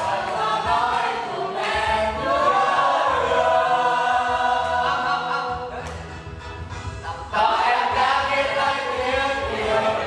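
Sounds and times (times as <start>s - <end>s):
group singing in chorus: 0.0s - 6.4s, 7.0s - 10.0s.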